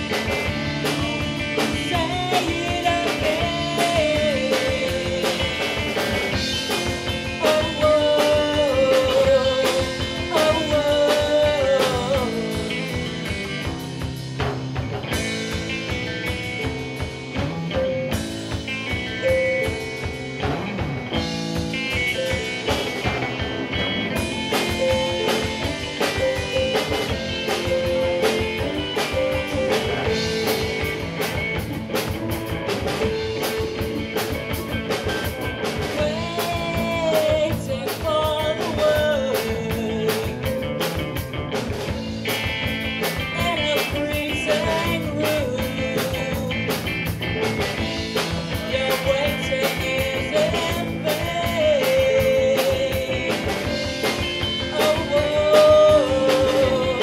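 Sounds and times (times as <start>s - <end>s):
live rock band playing: 0.0s - 57.0s
woman singing lead vocal: 1.6s - 13.2s, 35.9s - 40.6s, 43.3s - 46.8s, 48.5s - 57.0s.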